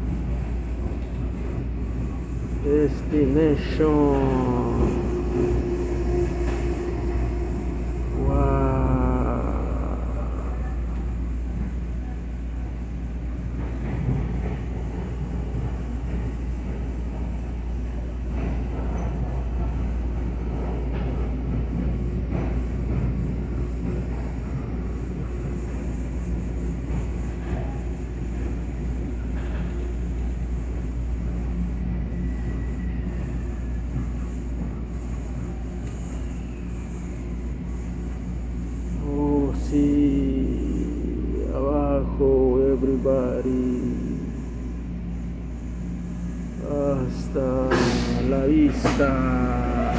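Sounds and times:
train railcar rumble: 0.0s - 49.9s
person calling out: 8.2s - 10.5s.

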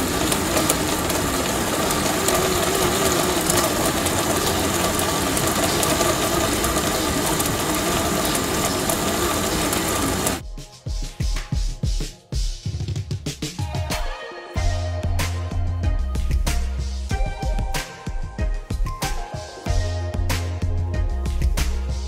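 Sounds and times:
bicycle blender whirring: 0.0s - 10.4s.

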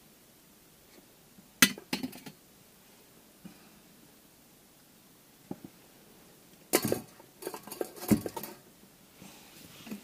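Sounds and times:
wire rack clattering on metal bowls: 6.8s - 8.6s.

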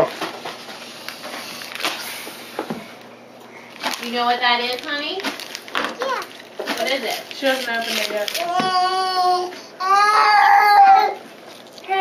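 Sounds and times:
wrapping paper rustling: 0.0s - 2.5s, 3.6s - 12.0s
sharp paper crackles: 1.1s - 2.3s, 3.7s - 9.1s, 11.3s - 12.0s.

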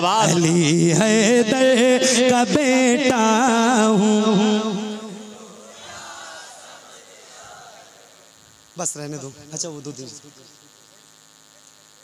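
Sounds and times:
faint high-pitched buzz: 0.0s - 12.0s
man speaking over microphone: 8.8s - 10.6s.

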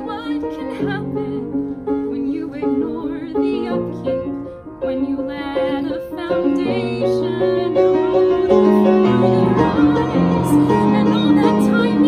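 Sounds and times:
piano accompaniment: 0.0s - 12.0s
woman singing: 0.0s - 12.0s.

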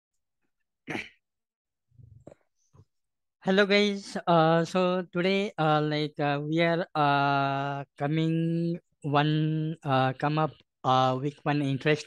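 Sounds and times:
person coughing or sneezing: 0.9s - 1.2s.

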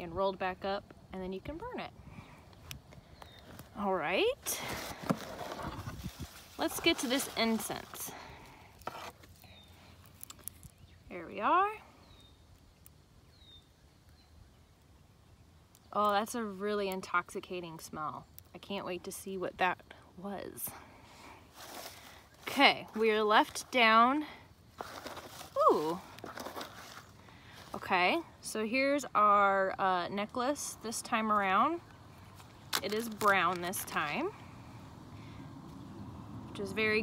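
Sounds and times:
short rustle: 4.5s - 10.7s, 21.5s - 23.0s, 24.8s - 27.8s
package being opened: 32.4s - 34.0s.

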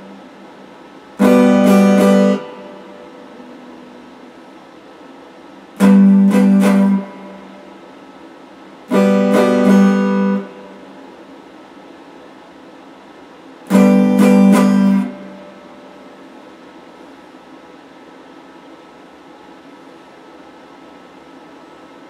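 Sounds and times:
electric guitar strumming chords: 0.0s - 4.4s, 5.7s - 8.0s, 8.8s - 11.0s, 13.6s - 16.4s
steady hiss: 0.0s - 22.0s.

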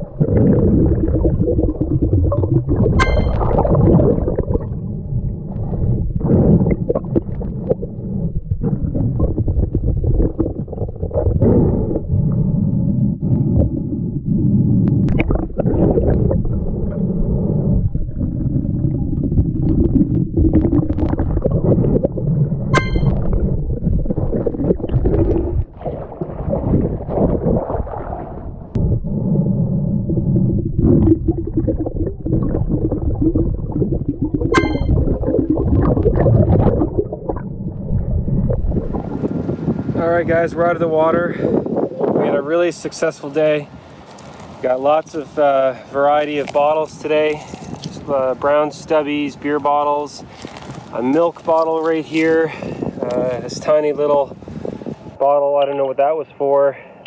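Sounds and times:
muffled underwater rumble: 0.0s - 43.0s, 44.5s - 57.0s.

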